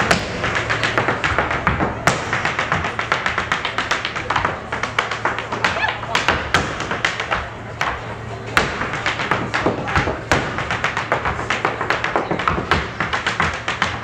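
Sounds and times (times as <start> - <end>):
hard shoes tapping on stage floor: 8.6 - 14.0.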